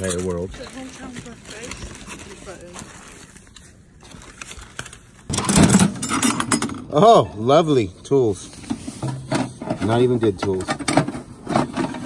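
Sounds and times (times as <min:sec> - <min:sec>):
tools rattling in metal can: 0:05.3 - 0:06.9, 0:08.8 - 0:12.0.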